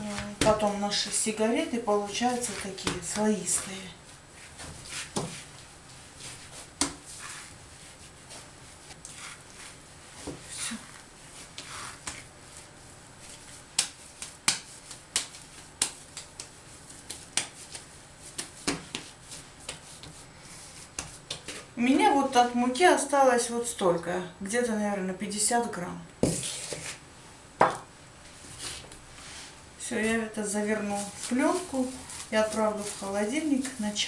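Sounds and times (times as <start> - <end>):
hands patting dough: 0.0 - 21.8, 30.0 - 34.0.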